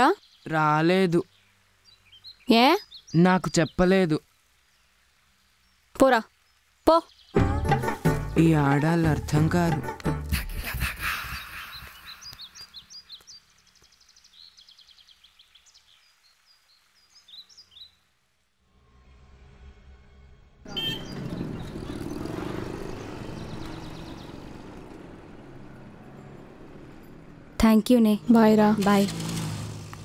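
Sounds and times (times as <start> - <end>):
small birds chirping: 0.0 - 7.5, 10.9 - 18.2, 20.7 - 30.0
street noise with vehicles: 20.6 - 30.0.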